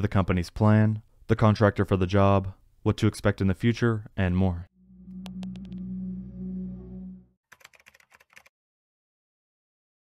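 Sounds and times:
low electronic drone: 4.8s - 7.4s
typewriter typing clicks: 7.5s - 8.5s.

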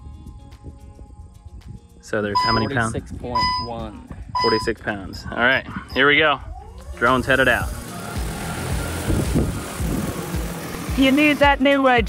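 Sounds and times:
drone rotors whirring: 6.7s - 11.6s.

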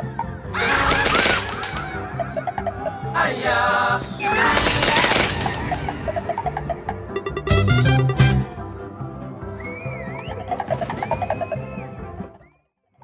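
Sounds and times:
game music with plucked notes: 5.7s - 8.8s.

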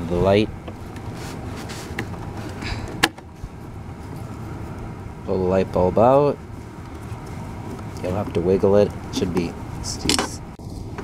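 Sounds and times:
low background rumble: 0.0s - 11.0s
light scrapes: 1.1s - 2.5s.

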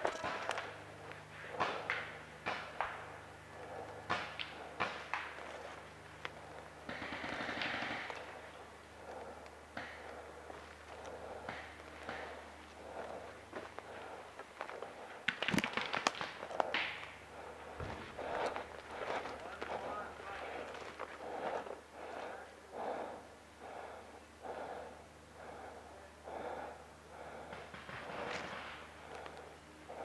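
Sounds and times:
distant voices calling out: 0.0s - 30.0s.

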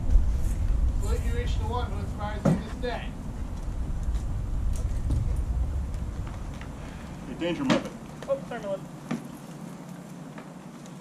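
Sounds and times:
low steady rumble: 0.0s - 10.2s.

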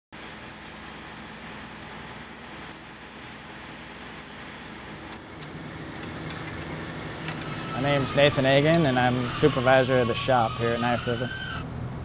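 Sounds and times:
low machinery hum: 0.2s - 12.0s.

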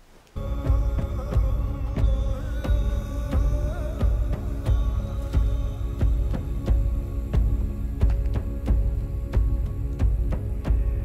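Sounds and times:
sustained droning chord: 0.4s - 11.0s.

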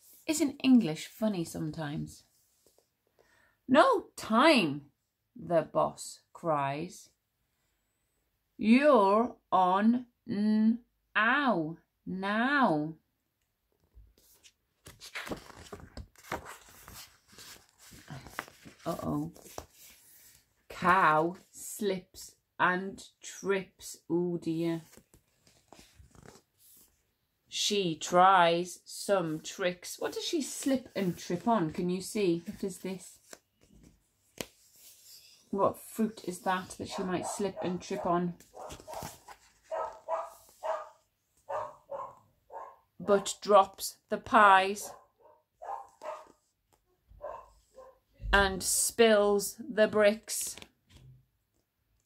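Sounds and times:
book pages rustling: 13.9s - 21.4s, 24.7s - 27.1s, 29.3s - 41.7s, 50.6s - 51.6s
dog barking: 36.9s - 39.1s, 39.7s - 42.9s, 44.8s - 46.4s, 47.2s - 48.1s.

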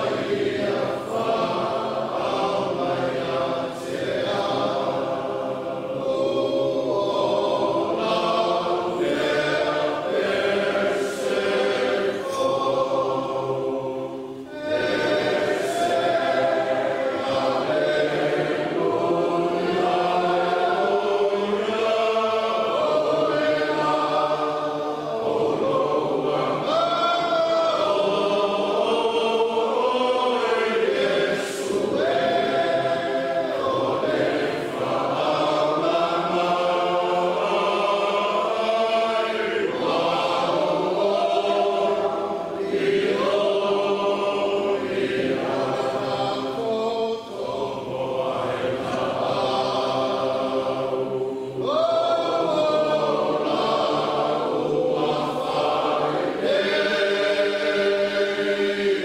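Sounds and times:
choir singing a hymn: 0.0s - 59.0s.

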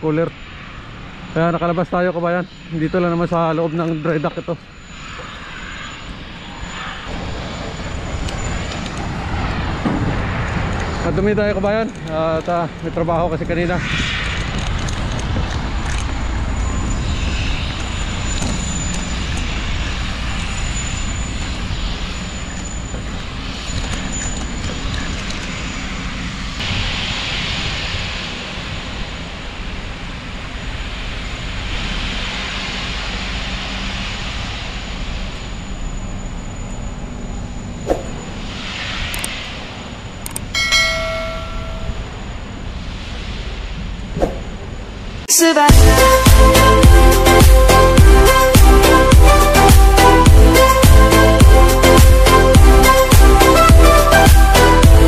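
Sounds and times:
faint high whine: 0.0s - 46.4s
hissing noise: 0.0s - 55.0s
machinery low rumble: 0.0s - 55.0s
sharp click: 39.1s - 39.4s, 40.2s - 40.5s
short pitched tone: 40.5s - 42.4s.

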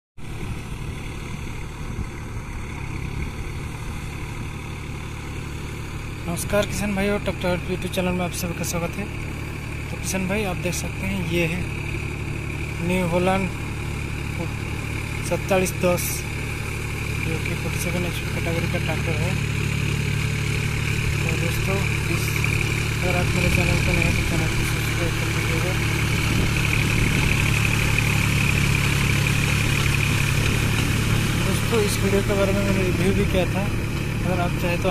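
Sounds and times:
tractor diesel engine rumbling: 0.2s - 34.9s.

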